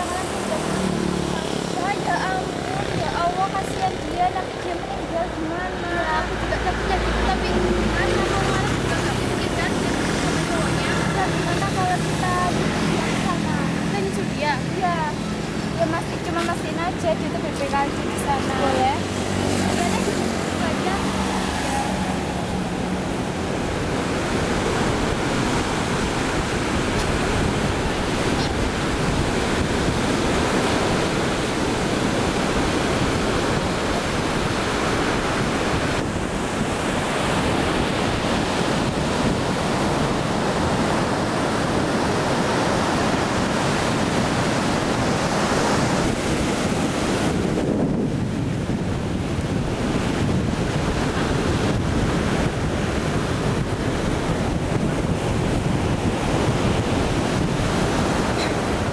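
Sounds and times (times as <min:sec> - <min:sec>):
surf washing onto beach: 0:00.0 - 0:58.9
wind buffeting microphone: 0:00.0 - 0:58.9.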